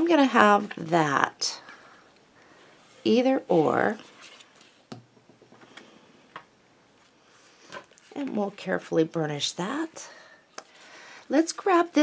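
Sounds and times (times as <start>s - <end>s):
soft paper rustles: 3.0s - 4.9s.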